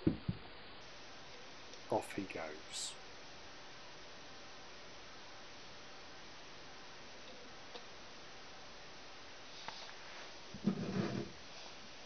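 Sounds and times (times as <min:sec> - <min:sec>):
low hiss of running sand: 0:09.4 - 0:12.0
box knocking and rubbing: 0:10.6 - 0:11.4.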